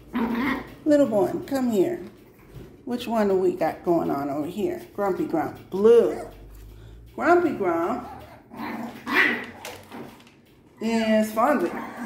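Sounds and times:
puppies growling and yapping: 0.0 - 0.9, 7.8 - 10.5, 11.4 - 12.0.

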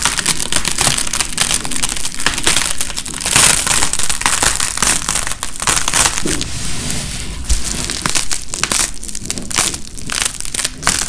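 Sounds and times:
dried paint crackling and tearing: 0.0 - 11.0.

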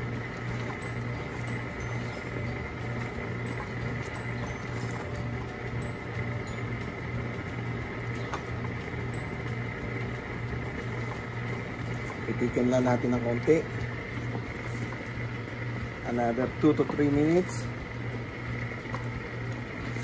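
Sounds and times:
low hum with faint hiss: 0.0 - 20.0.

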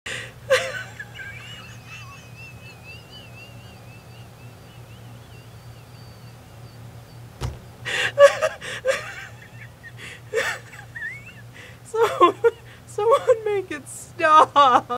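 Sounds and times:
woman laughing: 0.5 - 4.2, 7.9 - 13.6.

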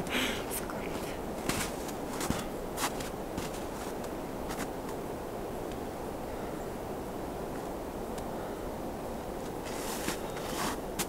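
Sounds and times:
steady outdoor hiss: 0.0 - 11.0
footsteps in snow: 0.9 - 5.0, 9.4 - 11.0.

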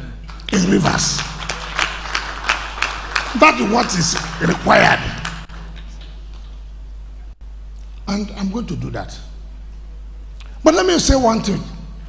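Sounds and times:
low hum through sound system: 0.0 - 12.0.

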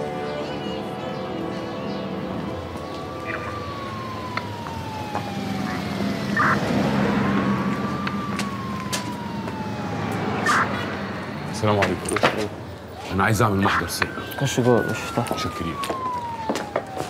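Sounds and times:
police siren wailing: 0.0 - 17.0
traffic rumble: 0.0 - 17.0.

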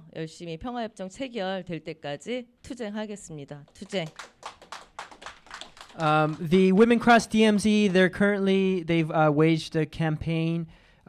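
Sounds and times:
audience applause: 4.0 - 7.1
person speaking: 6.0 - 8.2.

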